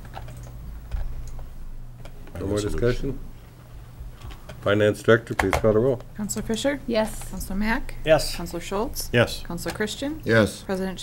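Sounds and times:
laptop keyboard typing clicks: 0.0s - 2.2s
steady low hum: 0.0s - 11.0s.

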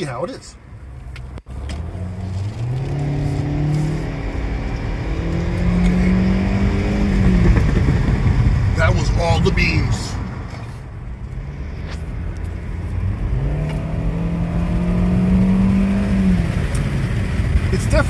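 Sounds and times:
road rumble: 0.0s - 18.0s
car engine accelerating hard: 1.5s - 18.0s.

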